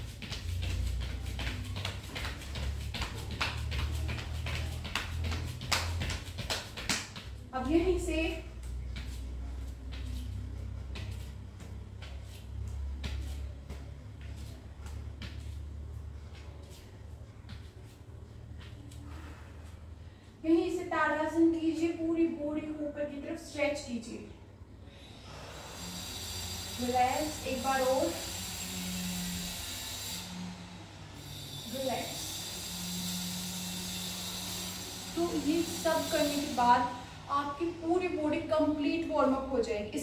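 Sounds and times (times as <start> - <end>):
bare feet thudding on yoga mat: 0.0 - 19.0.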